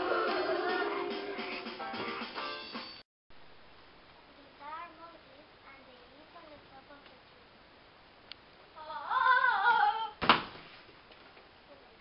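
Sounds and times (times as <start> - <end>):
child crying out: 8.8 - 10.2
thump of child dropping on floor: 10.2 - 10.9.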